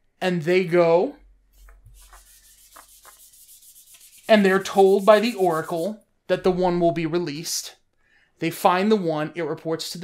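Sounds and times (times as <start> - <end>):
scratchy rubbing on surface: 1.6 - 6.0.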